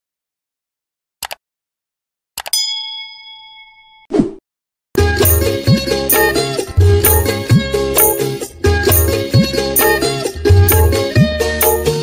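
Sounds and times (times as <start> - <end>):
bright bell ding: 2.6 - 4.1.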